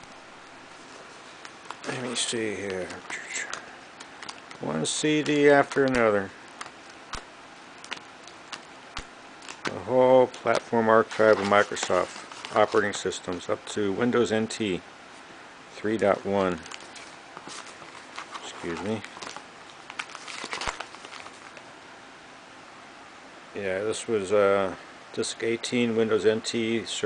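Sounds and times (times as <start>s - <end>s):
paper sleeves rustling: 0.7s - 7.2s, 9.4s - 13.4s, 15.9s - 21.6s
cd sleeves clicking while flipped: 2.6s - 10.7s.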